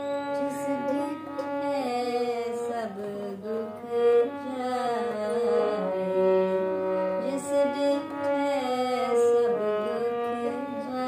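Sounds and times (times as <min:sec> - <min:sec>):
woman chanting melodically: 0:00.0 - 0:11.0.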